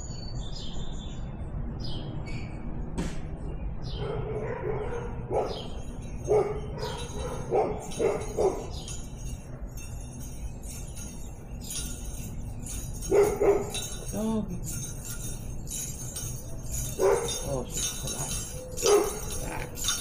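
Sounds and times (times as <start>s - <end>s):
dog barking: 4.0s - 5.7s, 6.3s - 8.7s, 13.1s - 13.9s, 17.0s - 17.6s, 18.8s - 20.0s.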